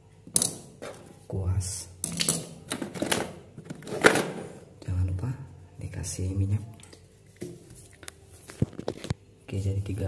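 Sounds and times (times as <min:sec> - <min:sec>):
tools clattering in toolbox: 0:02.1 - 0:04.5.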